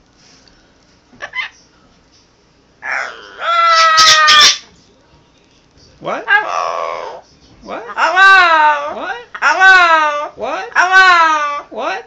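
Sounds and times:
parrot calling: 0:01.2 - 0:01.6, 0:02.8 - 0:04.7, 0:06.2 - 0:07.2, 0:07.8 - 0:11.8.

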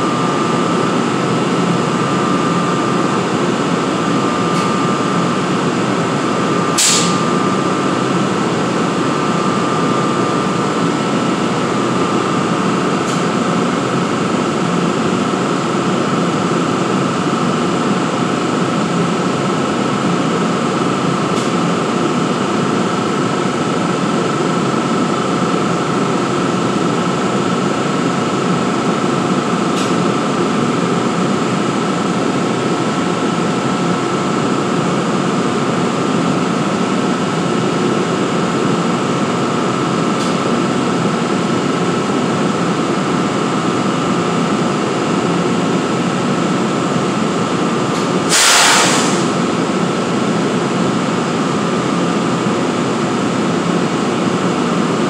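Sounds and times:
constant high whine: 0:00.0 - 0:55.0.

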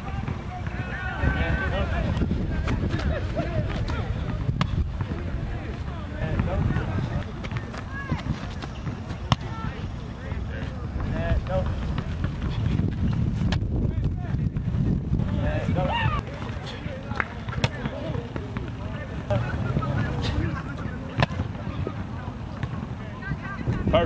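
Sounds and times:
wind rumbling on microphone: 0:01.1 - 0:09.7, 0:10.8 - 0:16.4, 0:23.3 - 0:24.0.

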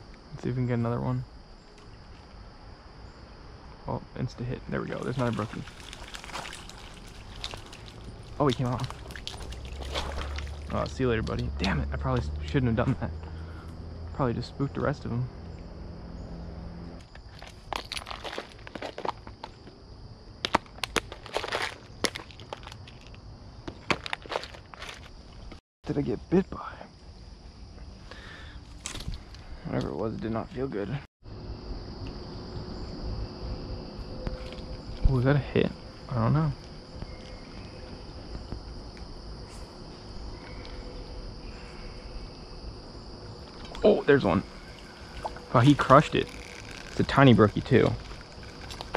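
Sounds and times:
high-pitched insect chorus: 0:00.0 - 0:48.9
high insect buzz: 0:31.2 - 0:48.9.

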